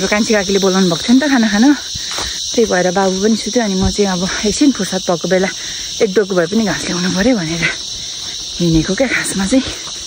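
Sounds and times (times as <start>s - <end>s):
woman talking: 0.0s - 7.8s, 8.5s - 9.9s
high-pitched insect chorus: 0.0s - 10.0s.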